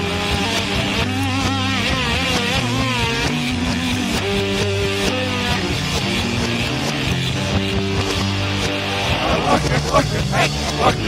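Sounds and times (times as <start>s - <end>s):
rock music recording: 0.0s - 11.0s.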